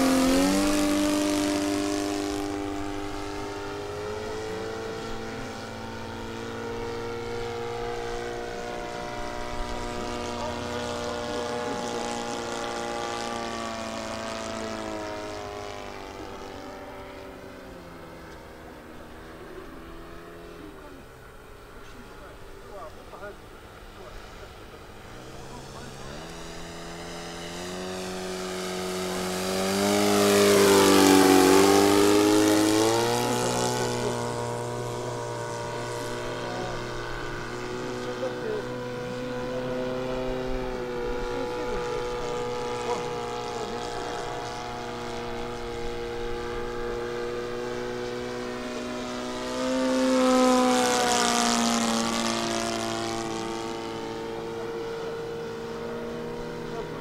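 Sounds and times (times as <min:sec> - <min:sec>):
model airplane engine droning: 0:00.0 - 0:57.0.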